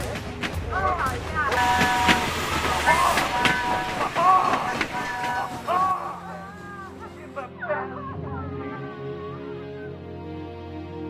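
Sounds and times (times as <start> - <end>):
train whistle tooting: 1.5 - 4.1.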